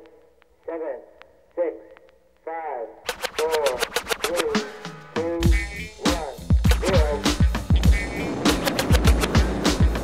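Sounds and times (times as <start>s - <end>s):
person speaking: 0.0s - 7.4s
rapid burst of sharp clicks: 3.0s - 4.8s, 6.5s - 7.2s, 8.5s - 10.0s
sampled voice phrase: 5.2s - 7.4s.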